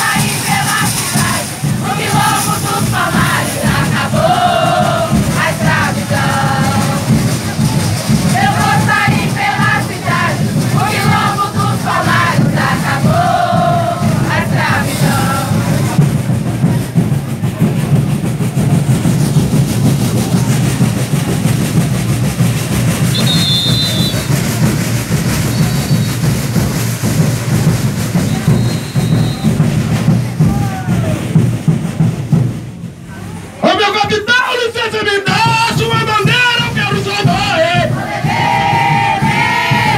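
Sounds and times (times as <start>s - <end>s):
people singing: 0.0s - 16.1s, 36.6s - 39.9s
crowd of voices: 0.0s - 39.9s
steady drumming: 0.0s - 39.9s
high whistle notes: 23.1s - 24.4s, 25.4s - 26.4s, 28.2s - 29.7s.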